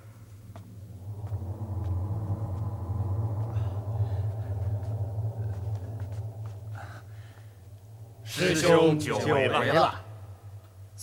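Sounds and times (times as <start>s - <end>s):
low rumbling drone: 0.0s - 11.0s.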